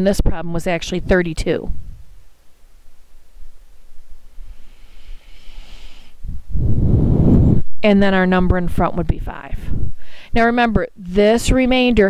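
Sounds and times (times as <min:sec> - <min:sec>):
person breathing into microphone: 0:04.4 - 0:07.6, 0:10.0 - 0:10.4.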